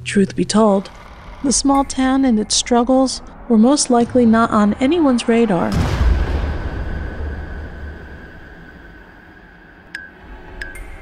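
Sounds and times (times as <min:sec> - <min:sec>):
steady high tone: 0:00.0 - 0:11.0
explosion boom: 0:03.2 - 0:09.5.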